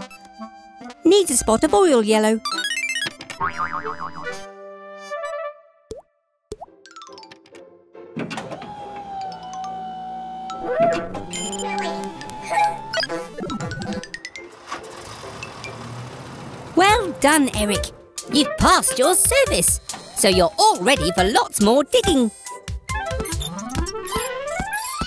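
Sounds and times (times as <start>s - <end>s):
children's background music: 0.0s - 5.1s, 9.0s - 14.9s, 16.8s - 25.0s
cartoon boings and plops: 3.4s - 4.4s.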